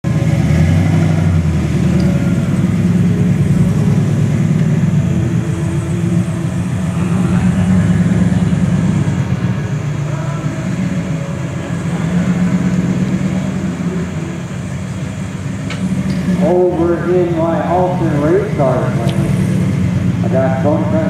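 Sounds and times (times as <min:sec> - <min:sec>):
car engine idling: 0:00.0 - 0:21.0
pickup truck idling: 0:00.0 - 0:21.0.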